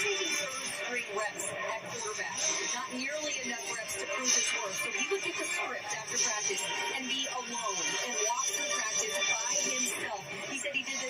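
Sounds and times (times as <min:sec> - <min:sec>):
background music on television: 0:00.0 - 0:11.0
person talking on television: 0:00.0 - 0:11.0.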